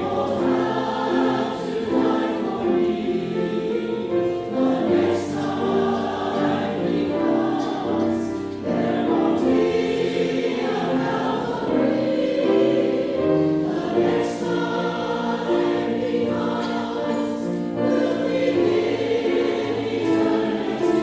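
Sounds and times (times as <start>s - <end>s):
choir singing in harmony: 0.0s - 21.0s
piano accompaniment: 0.0s - 21.0s.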